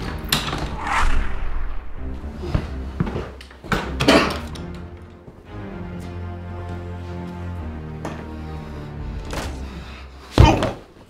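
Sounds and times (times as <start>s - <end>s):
noisy swells: 0.4s - 2.8s
low drone: 0.4s - 3.0s.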